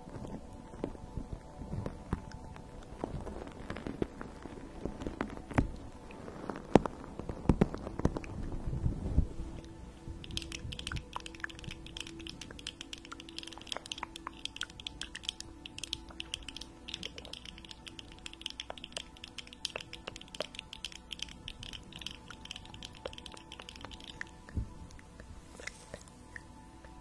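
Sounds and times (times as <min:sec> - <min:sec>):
nails clicking together: 0:10.2 - 0:25.2.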